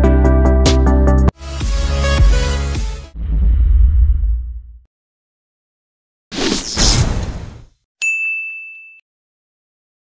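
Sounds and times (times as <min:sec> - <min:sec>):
notification bell ding: 0:08.0 - 0:09.0.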